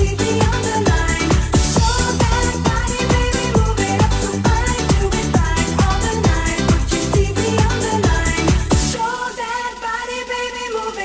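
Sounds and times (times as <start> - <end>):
bass line: 0.0 - 9.0
pounding kick drum: 0.0 - 9.0.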